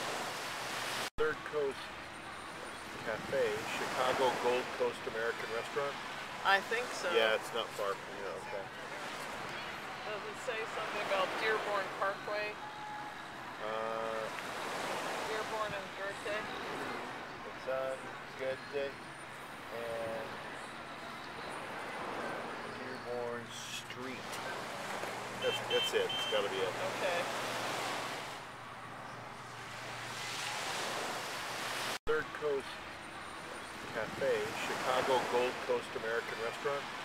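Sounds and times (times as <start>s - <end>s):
waves washing onto beach: 0.0s - 1.1s, 2.9s - 8.1s, 14.0s - 17.2s, 24.1s - 28.5s, 29.6s - 32.7s, 33.4s - 37.0s.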